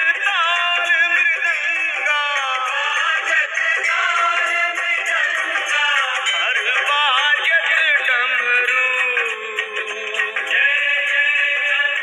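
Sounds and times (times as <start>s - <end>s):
devotional song with accompaniment: 0.0s - 12.0s.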